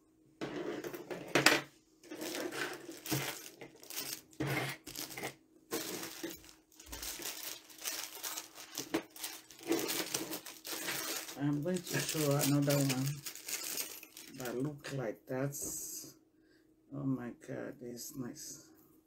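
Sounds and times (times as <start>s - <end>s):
metal jewelry clinking: 2.1s - 14.4s
plastic bags rustling: 2.1s - 14.8s.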